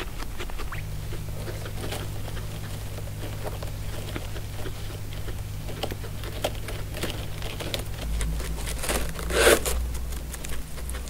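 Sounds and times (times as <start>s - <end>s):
guinea pig chewing hay: 0.0s - 11.0s
guinea pig tearing hay: 0.0s - 11.0s.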